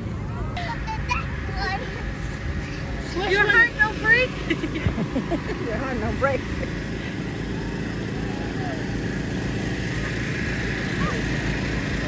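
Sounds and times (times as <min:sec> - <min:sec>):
air blower motor hum: 0:00.0 - 0:12.0
voices of people and children: 0:00.1 - 0:04.4, 0:07.2 - 0:12.0.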